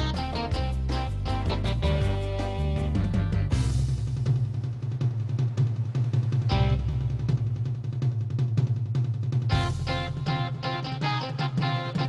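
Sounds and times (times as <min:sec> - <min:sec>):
organ chord: 0:00.0 - 0:03.7
rapid drum machine hits: 0:00.0 - 0:12.0.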